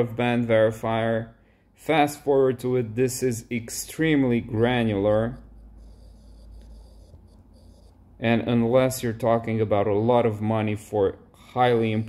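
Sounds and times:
stylus scratching on tablet screen: 0:04.1 - 0:08.2.

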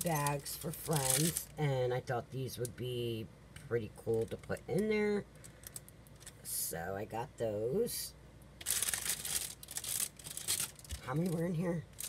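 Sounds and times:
plastic packaging crinkling: 0:00.0 - 0:01.6, 0:05.4 - 0:06.4, 0:08.6 - 0:12.0.

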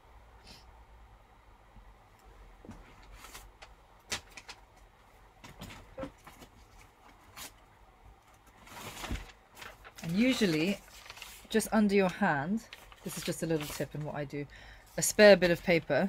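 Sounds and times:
paper rustling: 0:02.7 - 0:07.6, 0:08.2 - 0:14.2.

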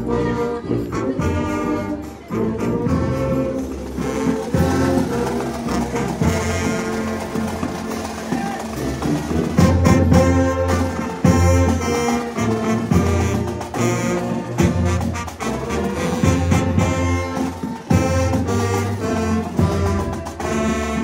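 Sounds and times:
brass band playing low chords: 0:00.0 - 0:21.0.

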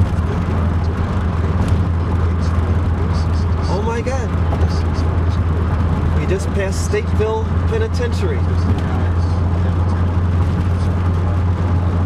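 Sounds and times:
road and engine drone in car: 0:00.0 - 0:12.0.

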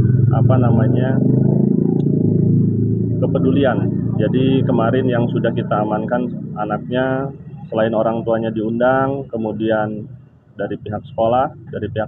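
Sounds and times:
vehicle engines idling: 0:02.7 - 0:12.0.

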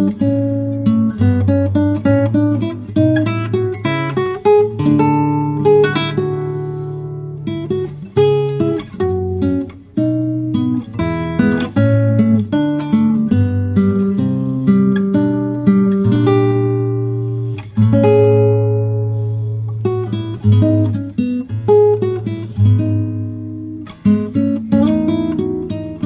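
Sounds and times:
fingerpicked acoustic guitar melody: 0:00.0 - 0:26.0.

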